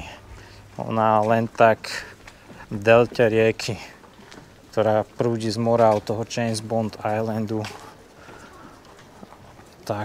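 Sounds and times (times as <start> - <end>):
man talking: 0.0 - 4.0, 4.7 - 8.1, 9.6 - 10.0
footsteps on concrete: 0.0 - 10.0
low background hiss: 0.0 - 10.0.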